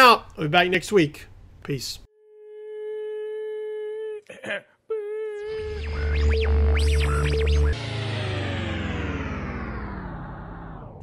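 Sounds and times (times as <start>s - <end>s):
steady electronic tone: 5.3s - 11.0s
synthesizer music with heavy bass: 5.5s - 11.0s.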